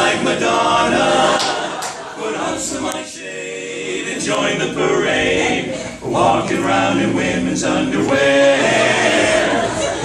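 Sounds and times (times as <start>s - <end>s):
male quartet singing a cappella: 0.0s - 10.0s.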